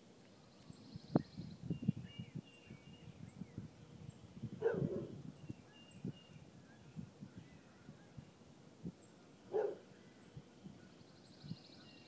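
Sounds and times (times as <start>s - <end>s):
faint songbird chirps: 0.2s - 12.0s.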